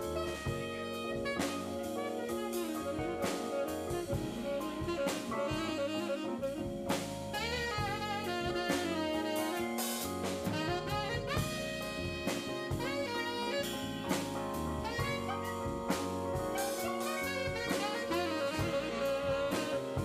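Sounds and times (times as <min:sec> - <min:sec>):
drum kit with cymbals: 0:00.0 - 0:20.0
electric bass: 0:00.0 - 0:20.0
tenor saxophone solo: 0:00.0 - 0:20.0.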